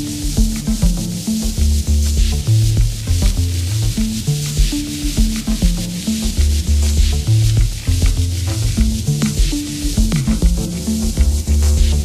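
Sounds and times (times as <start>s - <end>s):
hissing high end: 0.0s - 12.0s
low drum machine thumps: 0.0s - 12.0s
sequenced synth bassline: 0.0s - 12.0s.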